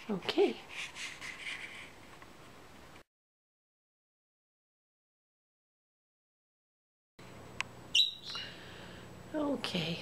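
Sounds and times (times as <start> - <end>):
parakeet chirp: 7.9 - 8.5.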